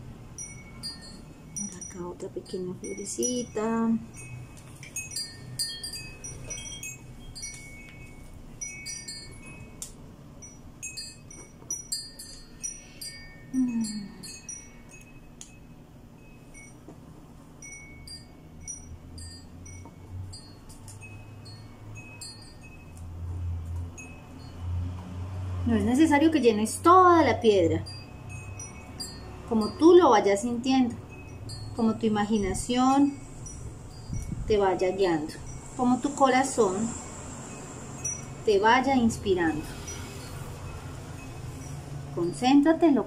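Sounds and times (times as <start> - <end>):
wind chimes tinkling: 0.0 - 43.0.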